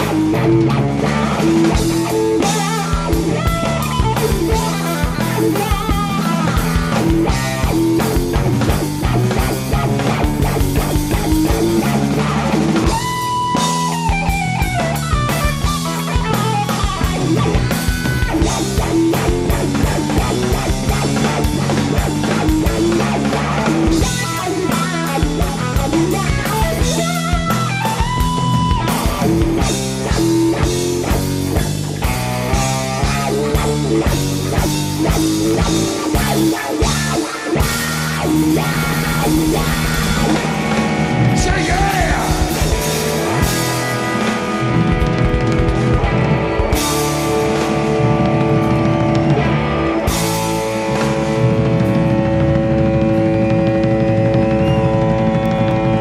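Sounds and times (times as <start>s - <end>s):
bass guitar: 0.0s - 56.0s
drum kit: 0.0s - 56.0s
electric guitar lead: 0.0s - 56.0s.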